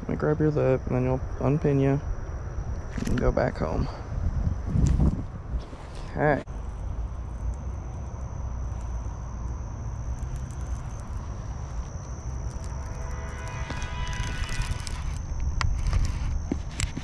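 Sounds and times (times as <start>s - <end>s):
thin high whine: 0.0s - 17.0s
wind buffeting microphone: 1.2s - 8.5s
fishing reel whirring and clicking: 6.5s - 17.0s.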